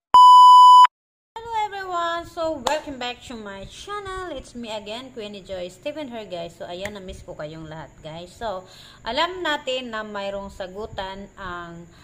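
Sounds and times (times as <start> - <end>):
electronic test-tone beep: 0.1 - 0.9.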